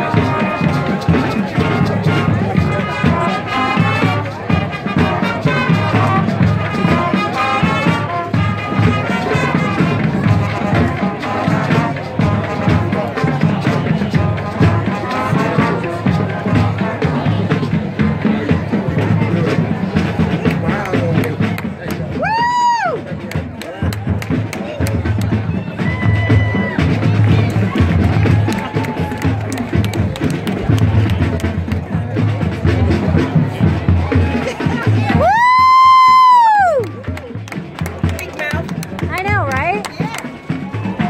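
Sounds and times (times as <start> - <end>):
drumline beat: 0.0 - 41.0
marching band playing: 0.0 - 41.0.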